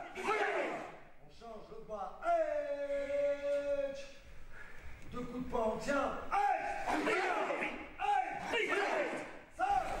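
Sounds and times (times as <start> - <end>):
group shouting in unison: 0.0 - 1.0, 6.4 - 10.0.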